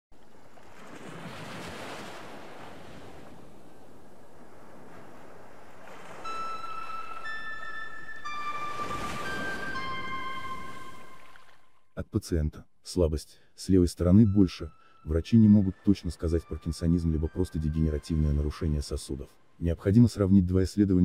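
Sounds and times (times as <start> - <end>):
held electronic notes: 6.2 - 11.7, 13.9 - 19.1.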